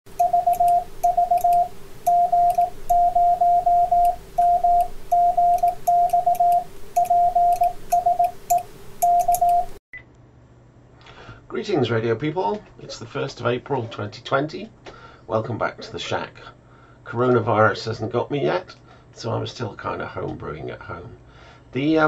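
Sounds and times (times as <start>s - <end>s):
morse code tone: 0.1s - 9.8s
steady low hum: 0.1s - 19.9s.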